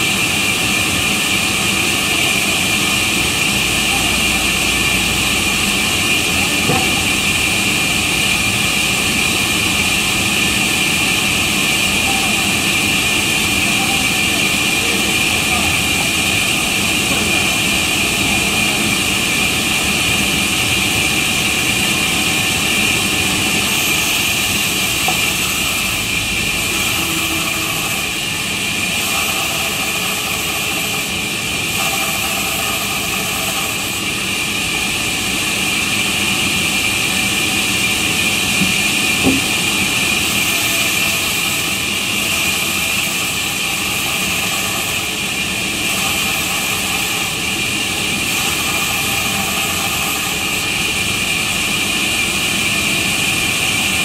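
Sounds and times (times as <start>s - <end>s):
band saw whining through log: 0.0s - 54.0s
brief knock: 6.7s - 7.1s, 38.6s - 39.6s.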